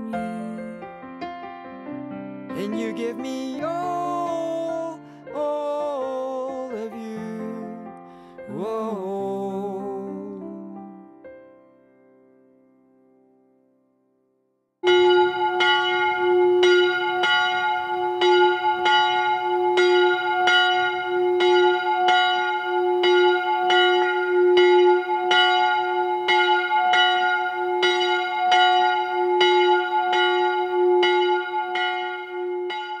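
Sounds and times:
chapel bell ringing: 14.8s - 33.0s.

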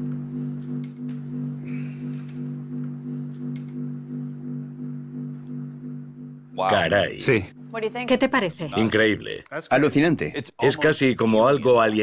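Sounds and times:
low throbbing hum: 0.0s - 9.2s.

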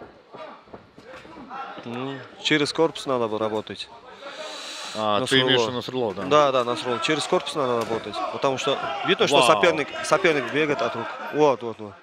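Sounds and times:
faint men's voices: 0.0s - 12.0s
man talking: 0.4s - 12.0s.

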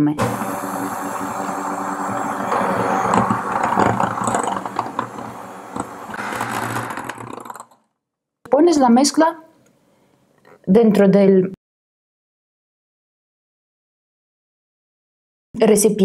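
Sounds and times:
electric hand mixer running: 0.2s - 7.8s.

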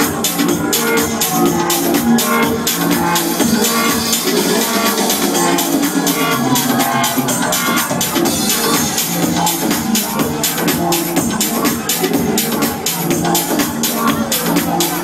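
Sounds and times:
electronic dance music: 0.0s - 15.0s.

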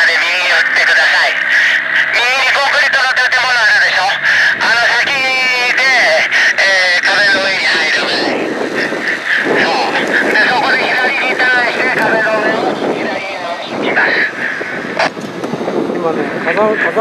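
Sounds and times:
people talking indistinctly: 0.0s - 17.0s.

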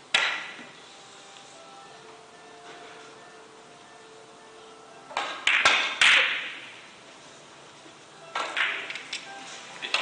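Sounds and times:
billiard balls clicking: 8.3s - 9.3s.

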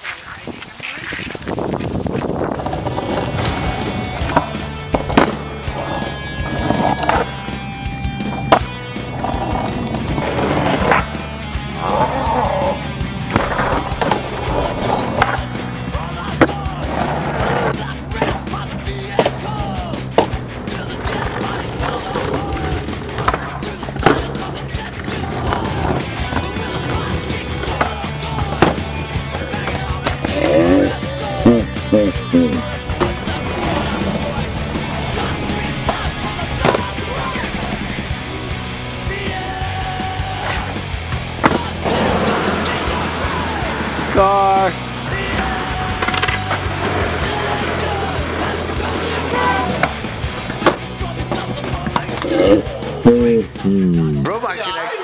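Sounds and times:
skateboard clacking on ground: 0.0s - 7.4s, 8.2s - 11.2s, 13.2s - 15.6s, 16.2s - 31.1s, 32.8s - 37.9s, 45.1s - 52.8s
skateboard wheels rolling on asphalt: 0.0s - 31.4s, 32.7s - 53.0s
rock music: 2.3s - 55.0s.

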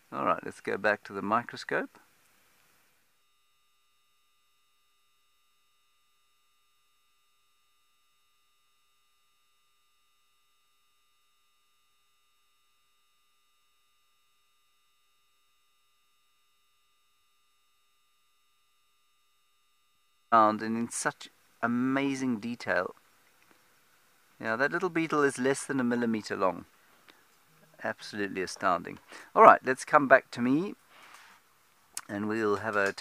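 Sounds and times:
faint electronic hum: 0.0s - 33.0s.

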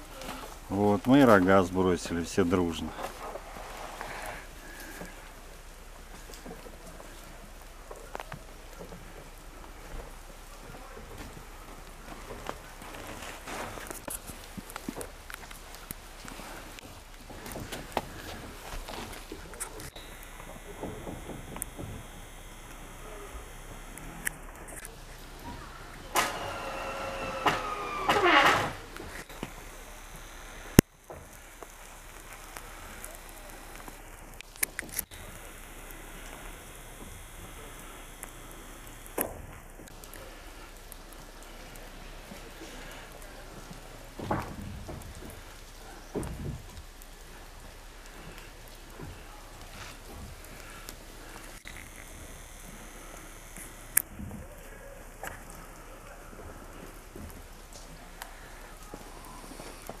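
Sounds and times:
wet snow hissing: 0.0s - 60.0s.

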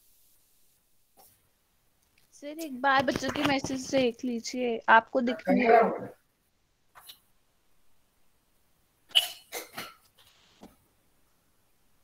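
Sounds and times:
person coughing: 9.1s - 10.0s.

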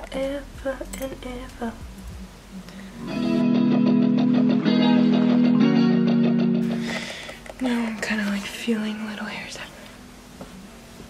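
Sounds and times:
low room noise: 0.0s - 11.0s
woman whispering softly: 7.6s - 9.9s.

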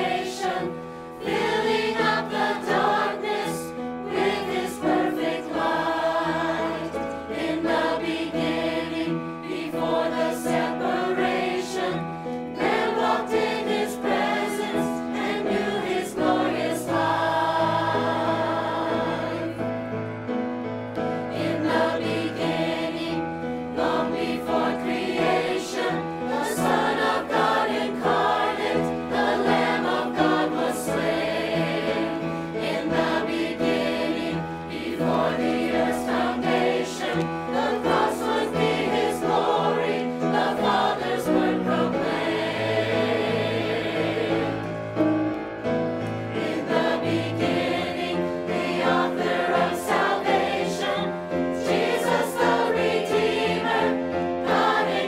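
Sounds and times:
choir singing a sacred song: 0.0s - 20.0s, 21.0s - 45.0s, 46.1s - 55.0s.

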